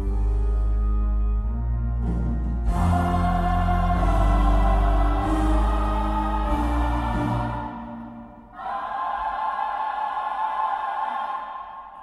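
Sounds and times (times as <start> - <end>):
music: 0.0 - 12.0
choir singing held chord: 2.6 - 12.0.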